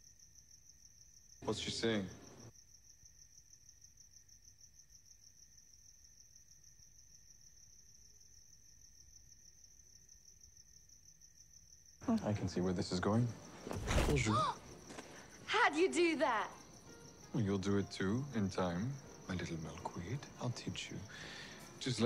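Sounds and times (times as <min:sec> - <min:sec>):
crickets chirring: 0:00.0 - 0:22.0.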